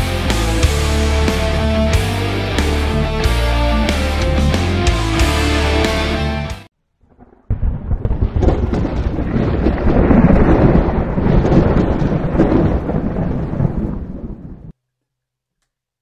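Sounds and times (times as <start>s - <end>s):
rolling thunder: 7.0s - 14.7s.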